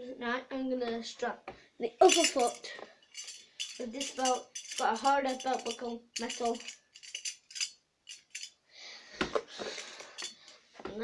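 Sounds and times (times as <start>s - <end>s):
belt rustling: 2.0s - 8.6s, 9.6s - 10.6s
metal belt buckle clinking: 2.0s - 8.6s, 9.8s - 10.6s.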